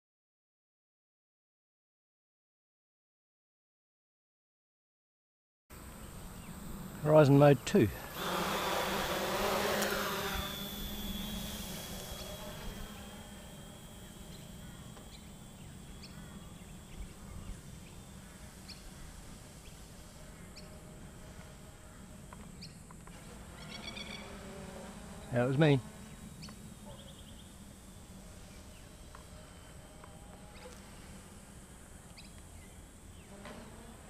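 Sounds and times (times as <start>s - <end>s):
drone propellers buzzing: 5.8s - 34.0s.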